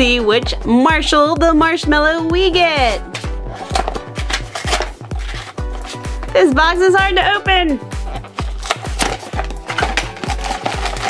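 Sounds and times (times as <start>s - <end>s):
background music with steady beat: 0.0s - 11.0s
cardboard box scraping and rustling: 3.5s - 6.2s, 8.1s - 11.0s.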